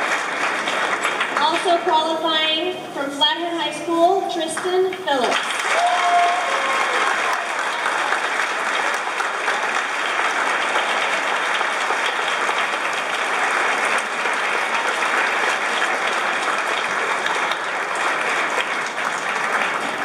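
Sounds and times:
audience applauding: 0.0s - 2.5s, 4.6s - 20.0s.

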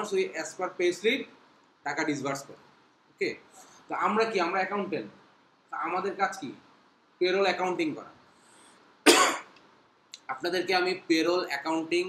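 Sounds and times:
person speaking: 0.0s - 8.2s, 10.2s - 12.0s
person coughing: 9.1s - 9.5s.

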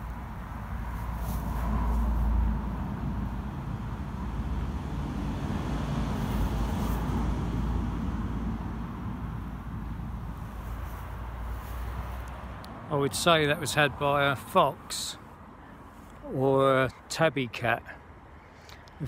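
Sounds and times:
low outdoor rumble: 0.0s - 17.2s.

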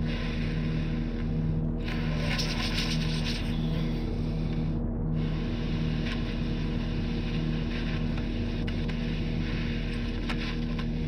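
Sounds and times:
constant hum: 0.0s - 11.0s
droning film score: 0.0s - 11.0s.

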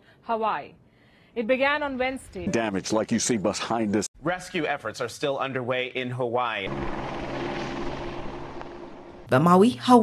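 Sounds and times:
helicopter rotor and engine drone: 6.6s - 9.3s.

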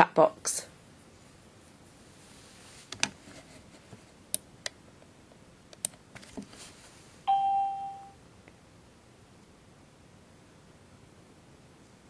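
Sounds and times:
electronic chime: 7.3s - 8.2s.

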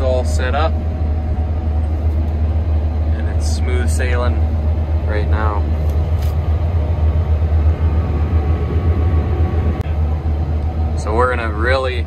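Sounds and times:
combine harvester low drone: 0.0s - 12.0s
faint machine whine: 0.0s - 12.0s.

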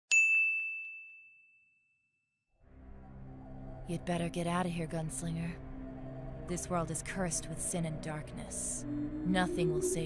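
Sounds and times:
bright bell ding: 0.1s - 2.0s.

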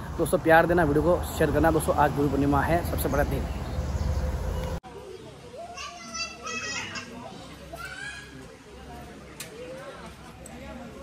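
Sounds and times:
crowd chatter: 4.8s - 11.0s
children calling out: 5.5s - 8.5s.

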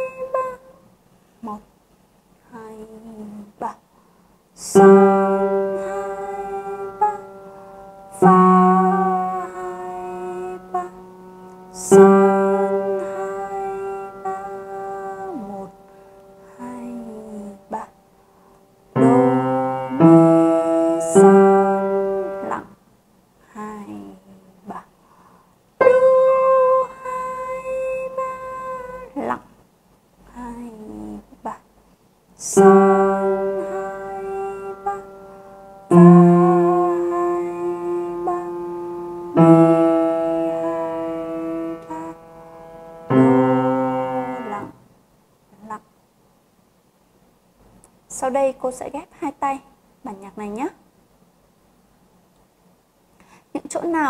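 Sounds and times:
slow piano notes: 0.0s - 0.8s, 4.6s - 22.8s, 25.8s - 29.1s, 32.5s - 44.8s.

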